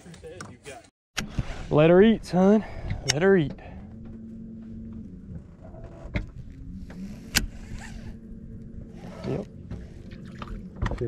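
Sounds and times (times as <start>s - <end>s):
electric motor humming: 2.8s - 10.9s.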